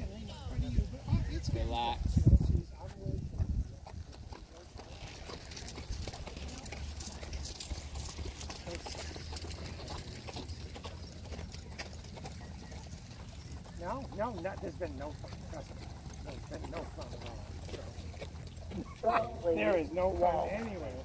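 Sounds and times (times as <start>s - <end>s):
horse hoofbeats on dirt: 0.0s - 21.0s.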